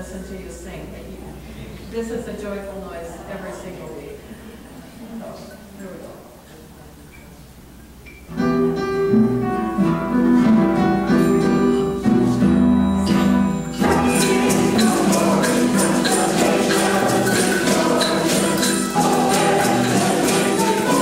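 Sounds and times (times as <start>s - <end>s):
bass: 8.1s - 17.3s
guitar melody: 8.3s - 21.0s
violin melody: 11.8s - 21.0s
tambourines shaking: 13.7s - 21.0s.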